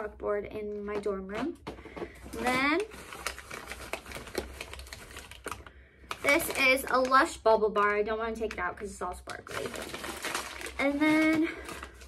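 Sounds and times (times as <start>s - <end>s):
paper bag crinkling: 2.3s - 8.6s, 9.3s - 12.0s.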